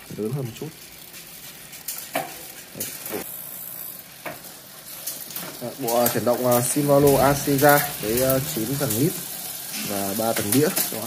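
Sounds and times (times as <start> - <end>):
bicycle chain whirring: 0.0 - 11.0.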